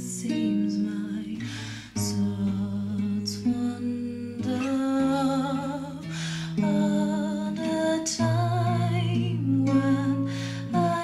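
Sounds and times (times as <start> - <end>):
acoustic guitar notes: 0.0 - 11.0.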